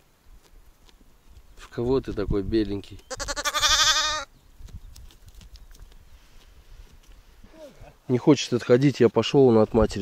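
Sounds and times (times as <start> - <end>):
lamb bleating: 3.1 - 4.3.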